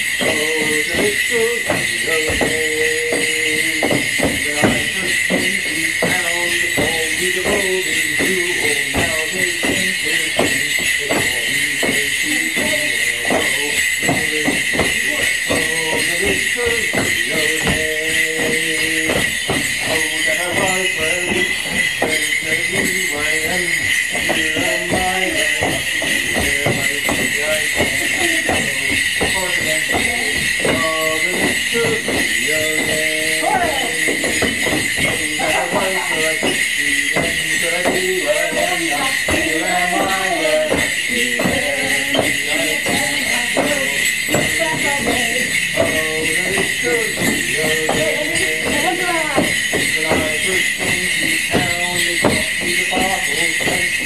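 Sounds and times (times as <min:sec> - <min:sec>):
folk dance tune: 0:00.0 - 0:54.0
leg bells jingling: 0:00.0 - 0:54.0
steps knocking on wooden deck: 0:00.0 - 0:54.0.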